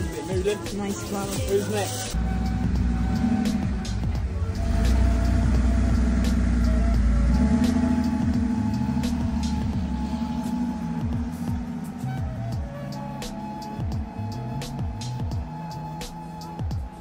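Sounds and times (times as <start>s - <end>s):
background music: 0.0s - 17.0s
car engine rumble driving off: 2.2s - 17.0s.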